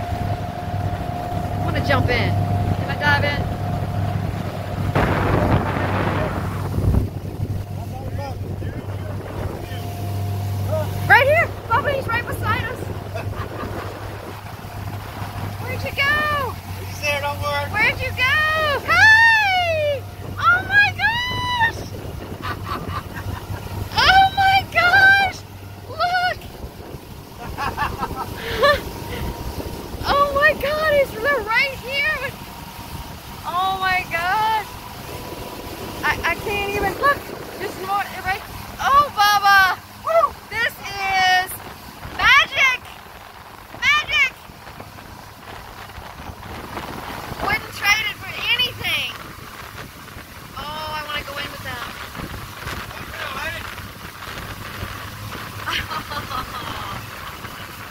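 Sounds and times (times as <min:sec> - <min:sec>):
outboard motor running: 0:00.0 - 0:57.9
water rushing in wake: 0:00.0 - 0:57.9
wind on microphone: 0:00.0 - 0:57.9.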